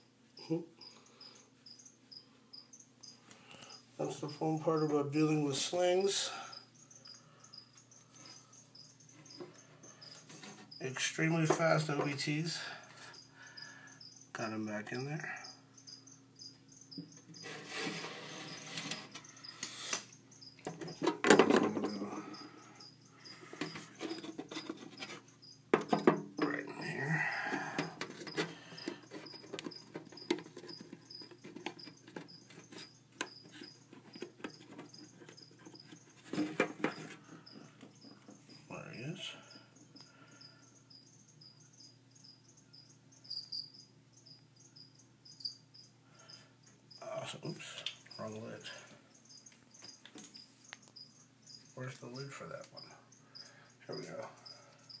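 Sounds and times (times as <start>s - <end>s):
cricket chirping: 0.0s - 55.0s
plastic cups being handled: 23.3s - 38.6s.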